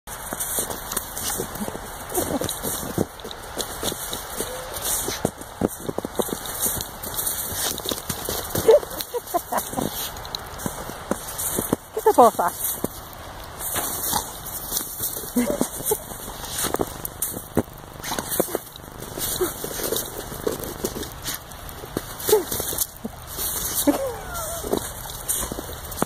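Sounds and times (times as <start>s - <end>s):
snow crunching: 0.1s - 26.0s
dog vocalizing: 3.8s - 5.3s, 8.4s - 9.5s, 23.8s - 25.8s.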